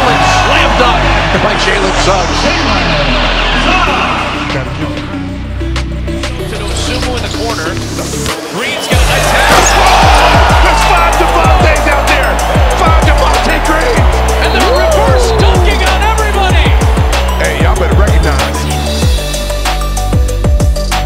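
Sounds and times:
crowd cheering: 0:00.0 - 0:04.6, 0:08.9 - 0:19.0
music with heavy bass beat: 0:09.0 - 0:21.0.

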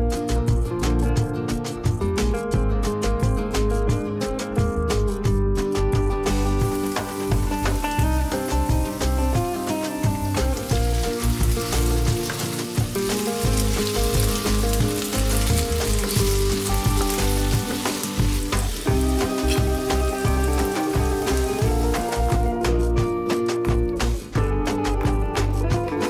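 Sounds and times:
background music: 0:00.0 - 0:26.0
potatoes sizzling in oil: 0:06.2 - 0:23.0.

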